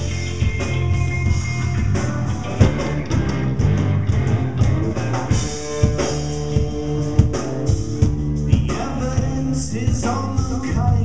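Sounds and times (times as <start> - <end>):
band playing live: 0.0 - 11.0
drum and cymbal hits: 0.0 - 11.0.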